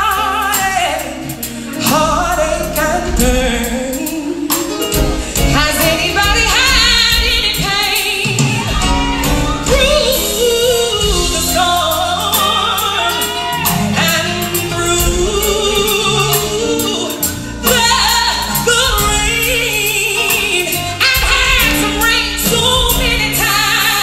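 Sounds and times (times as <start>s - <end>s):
backing singers: 0.0s - 24.0s
bass guitar: 0.0s - 24.0s
drums with cymbal hits: 0.0s - 24.0s
woman singing lead vocal: 0.0s - 24.0s.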